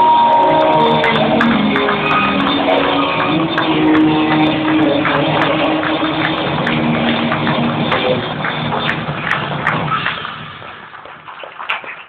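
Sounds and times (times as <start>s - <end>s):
electric guitar long notes: 0.0s - 10.4s
drums and cymbal hits: 0.0s - 11.3s.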